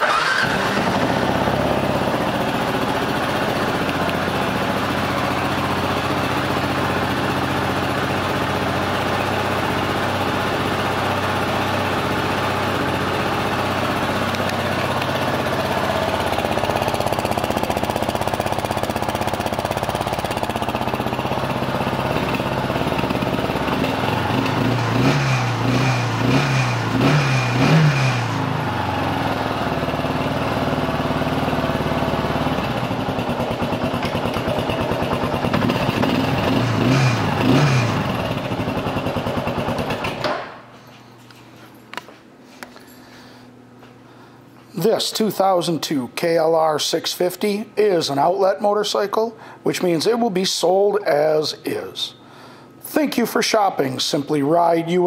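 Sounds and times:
motorcycle engine idling and revving: 0:00.0 - 0:40.4.

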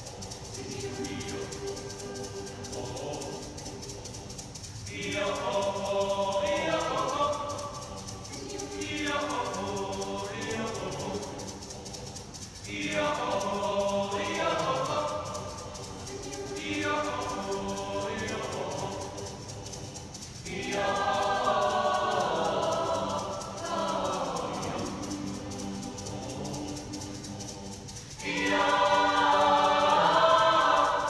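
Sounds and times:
mixed choir singing: 0:00.0 - 0:31.0.

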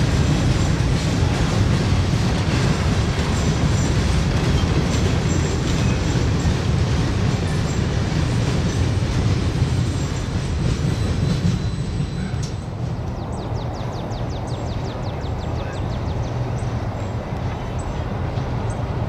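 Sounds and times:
train wheels rumbling on rails: 0:00.0 - 0:19.0.

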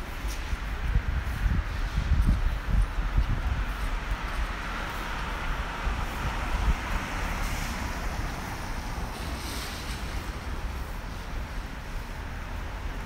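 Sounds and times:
traffic hiss: 0:00.0 - 0:13.0
tyres hissing on wet road: 0:00.0 - 0:13.0
wind rumbling on microphone: 0:00.0 - 0:13.0.

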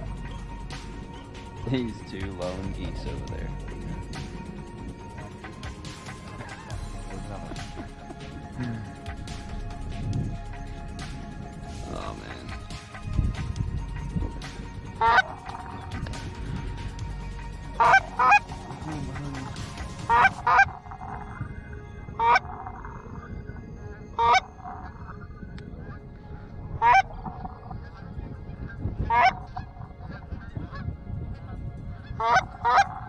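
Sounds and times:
goose honks: 0:15.0 - 0:15.9, 0:17.8 - 0:21.3, 0:22.2 - 0:23.1, 0:24.2 - 0:24.9, 0:26.8 - 0:28.2, 0:29.0 - 0:30.8, 0:32.1 - 0:33.0.

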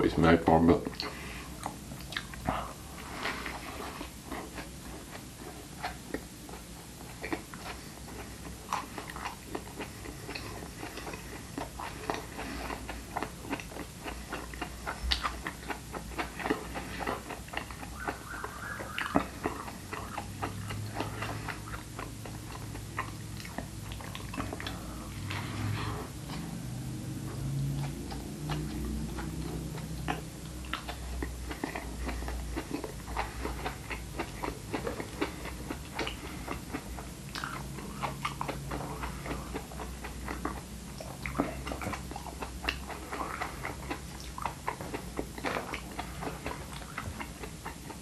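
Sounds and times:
person chewing wetly: 0:00.9 - 0:48.0
wet mouth clicks and smacks: 0:01.0 - 0:02.4.

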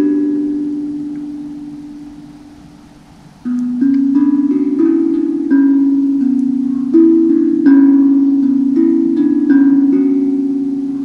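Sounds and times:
handpan melody: 0:00.0 - 0:11.0.

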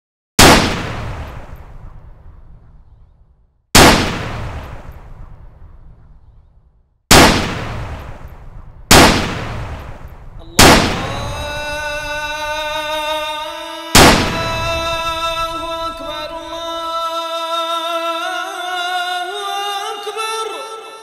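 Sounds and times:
loud booming hits: 0:00.4 - 0:03.1, 0:03.8 - 0:06.3, 0:07.1 - 0:12.7, 0:14.0 - 0:16.6.

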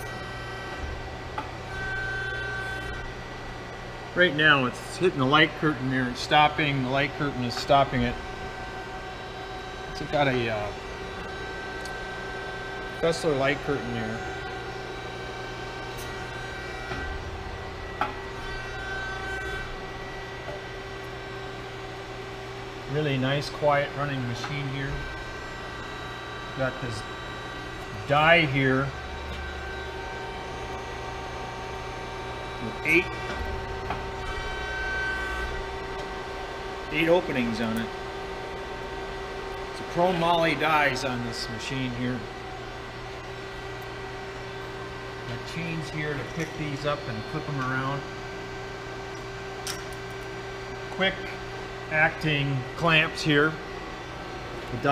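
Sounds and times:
hydraulic pump humming: 0:00.0 - 0:54.9
faint high whine: 0:22.8 - 0:48.4.

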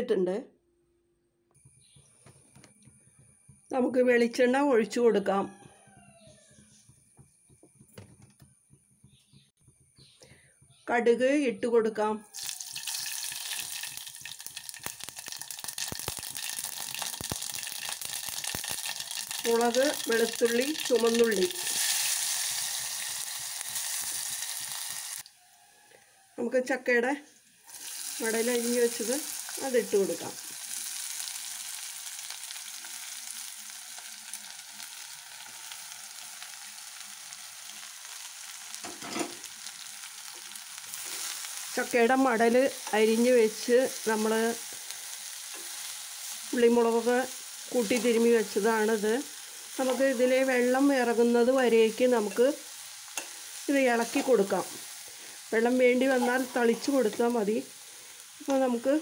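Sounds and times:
seeds sizzling and popping in oil: 0:12.3 - 0:25.6, 0:27.4 - 0:59.0.

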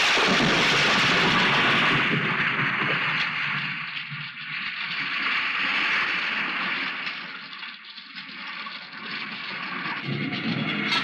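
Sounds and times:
heavy rain pouring: 0:00.0 - 0:03.1.

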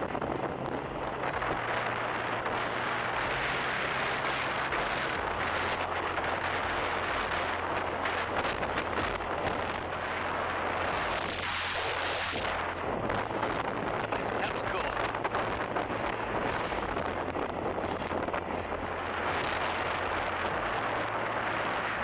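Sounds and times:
road noise: 0:00.0 - 0:22.0
wind buffeting microphone: 0:00.0 - 0:22.0.

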